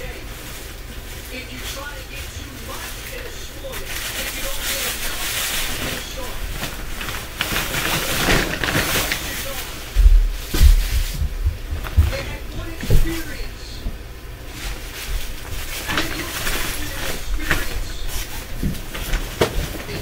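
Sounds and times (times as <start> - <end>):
heavy low thuds: 9.9 - 13.2.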